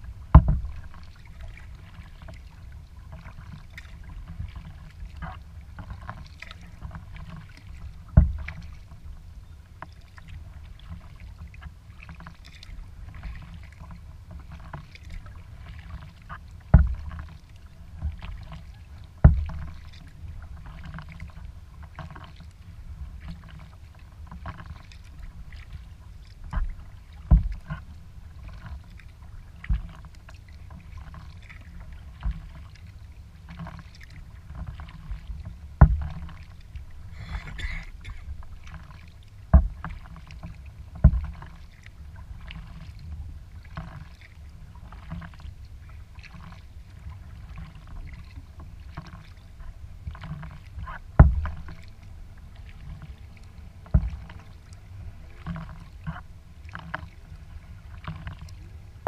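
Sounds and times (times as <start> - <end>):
paddle strokes and splashes: 0.0 - 59.0
hard knocks on kayak hull: 0.3 - 0.8, 8.2 - 8.5, 16.7 - 17.1, 19.2 - 19.6, 27.3 - 27.6, 35.8 - 36.3, 51.2 - 51.6, 53.9 - 54.3.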